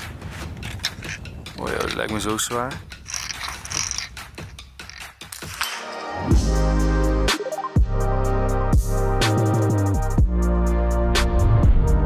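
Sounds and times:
music: 0.0 - 12.0.

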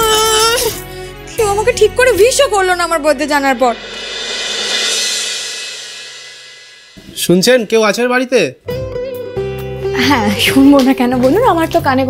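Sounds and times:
cymbal wash: 3.4 - 7.7.

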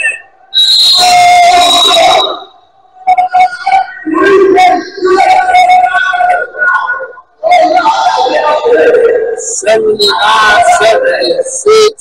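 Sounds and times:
referee's whistle long blast: 0.0 - 2.5.

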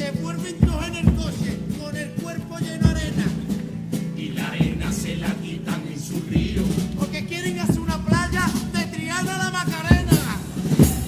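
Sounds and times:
male chorus singing: 0.0 - 10.8
guitar: 0.0 - 11.0
drum: 0.1 - 11.0.

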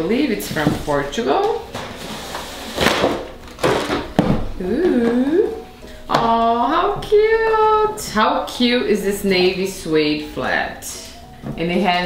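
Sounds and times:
cardboard lid scraping off: 1.7 - 4.2.

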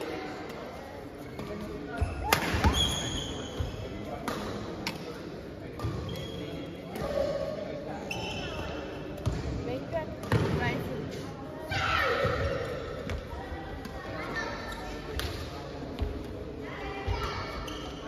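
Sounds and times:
rackets striking shuttlecock: 4.2 - 5.1.

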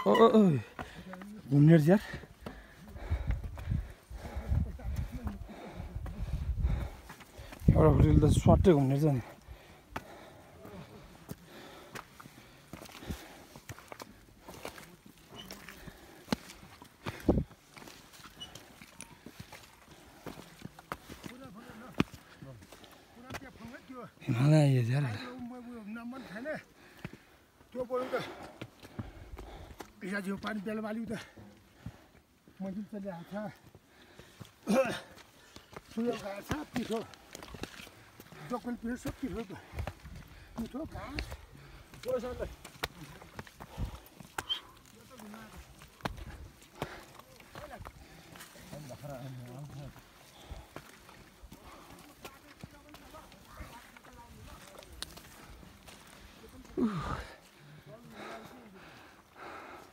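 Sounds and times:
footsteps on rocky trail: 0.0 - 59.9.

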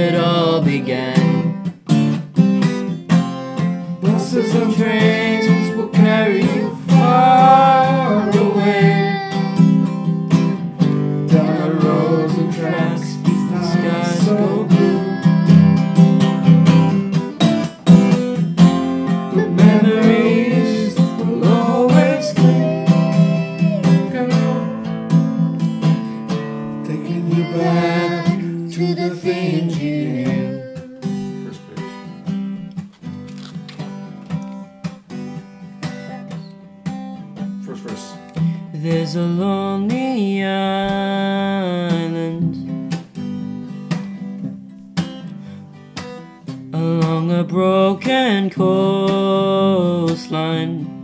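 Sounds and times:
acoustic guitar strumming chords: 0.0 - 51.0
person singing a note: 19.4 - 24.8.

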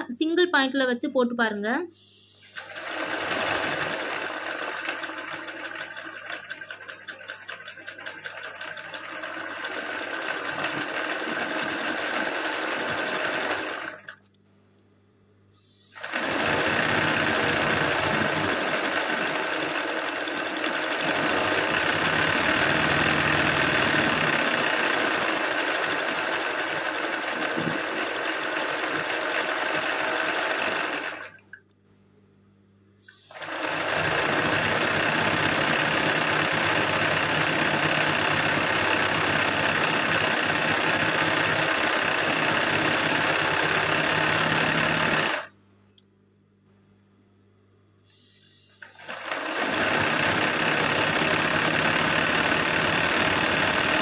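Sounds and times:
sewing machine running fast: 2.5 - 14.2, 15.9 - 31.4, 33.2 - 45.5, 48.8 - 54.0.

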